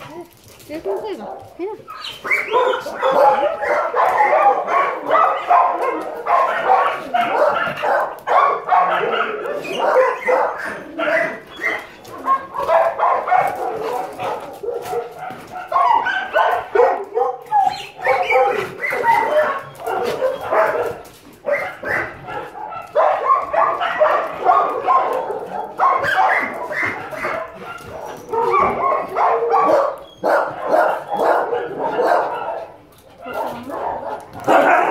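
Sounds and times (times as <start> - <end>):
dogs barking: 0.0 - 34.9.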